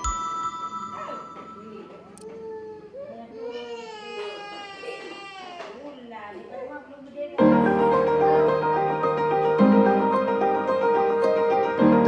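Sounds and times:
young child crying: 2.3 - 5.8.

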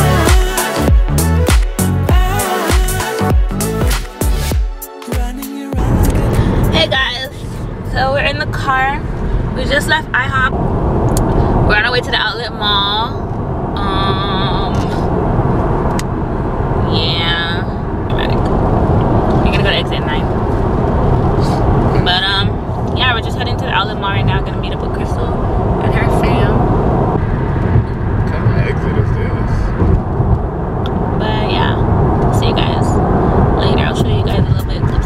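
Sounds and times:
car road and engine noise: 0.0 - 4.8, 5.8 - 35.0
woman talking: 6.7 - 10.6, 11.6 - 13.2, 13.8 - 15.1, 16.8 - 18.4, 19.4 - 20.3, 22.0 - 26.6, 31.2 - 33.0, 33.6 - 35.0.

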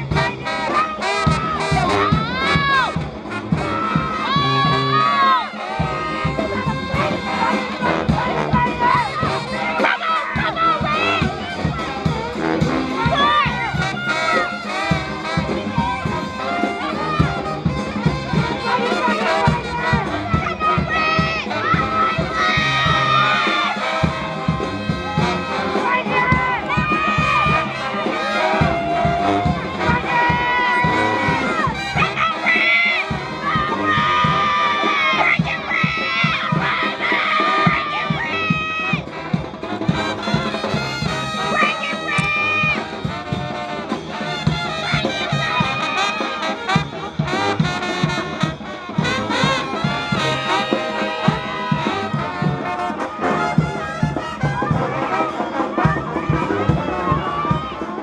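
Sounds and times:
brass band with drums: 0.0 - 58.0
crowd voices and shouts: 0.0 - 58.0.

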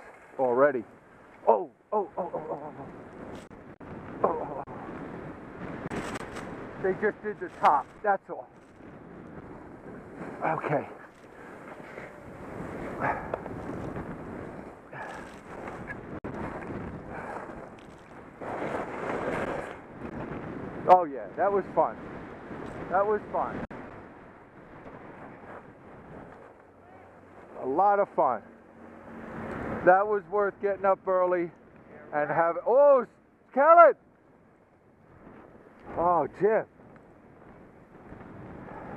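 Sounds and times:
skis sliding over snow: 0.0 - 0.8, 5.2 - 8.8, 9.6 - 21.9, 24.7 - 28.4
wind buffeting microphone: 2.3 - 30.7, 34.0 - 38.9
skis hissing through snow: 18.4 - 19.8.

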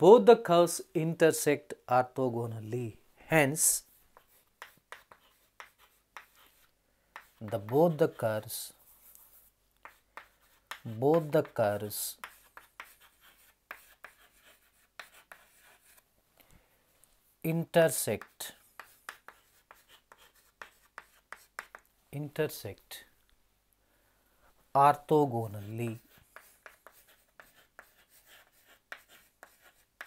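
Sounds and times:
chalk strokes on chalkboard: 3.6 - 16.0, 17.9 - 22.6, 25.4 - 30.0.

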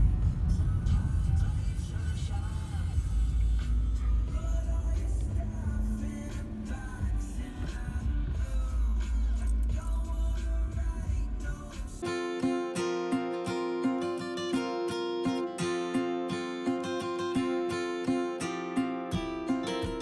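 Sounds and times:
car driving rumble: 0.0 - 11.9
music with singing: 0.0 - 20.0.

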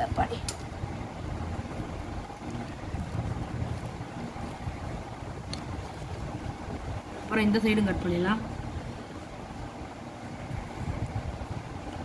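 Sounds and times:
low rumble of wind on microphone: 0.0 - 12.0.

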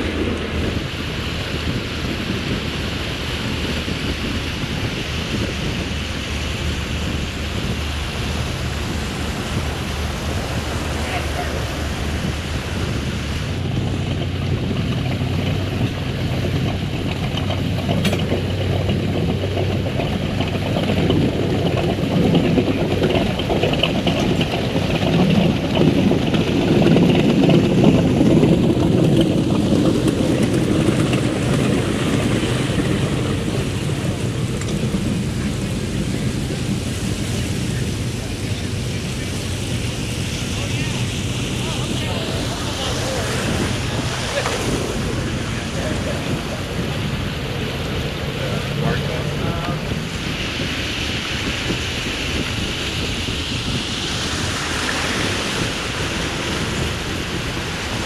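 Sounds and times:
boat engine droning: 0.0 - 58.0
water wash: 0.0 - 58.0
wind: 0.0 - 58.0.

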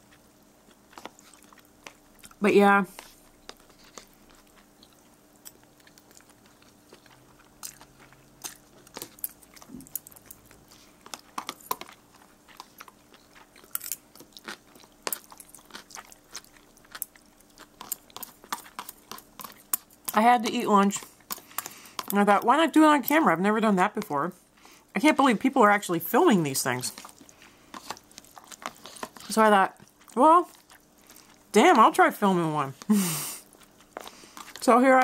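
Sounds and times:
person chewing noodles: 0.0 - 20.2, 21.0 - 22.2, 26.8 - 31.6, 32.8 - 34.6.

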